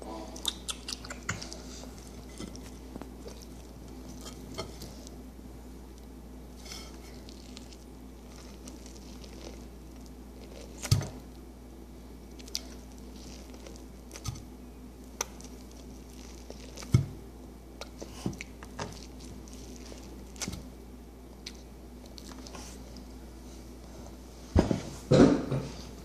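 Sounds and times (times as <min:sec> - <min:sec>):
steady low hum: 0:00.0 - 0:26.0
child chewing corn: 0:00.2 - 0:05.2, 0:05.8 - 0:11.5, 0:12.2 - 0:24.2
wet mouth clicks: 0:00.4 - 0:01.5.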